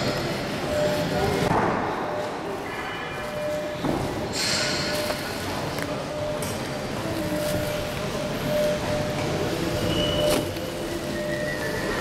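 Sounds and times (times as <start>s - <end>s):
indoor hall noise: 0.0s - 12.0s.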